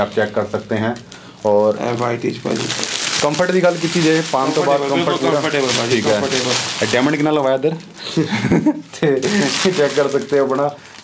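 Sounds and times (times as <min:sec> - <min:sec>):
man talking: 0:00.0 - 0:10.8.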